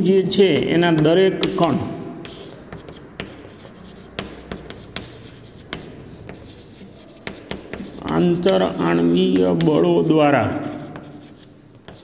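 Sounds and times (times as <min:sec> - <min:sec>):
chalk tapping and scraping: 0:00.4 - 0:12.0.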